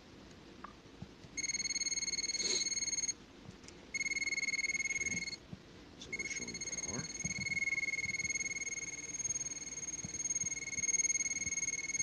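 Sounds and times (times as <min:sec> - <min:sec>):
voltage tester beeps: 0:01.4 - 0:03.2, 0:03.9 - 0:05.4, 0:06.1 - 0:12.0.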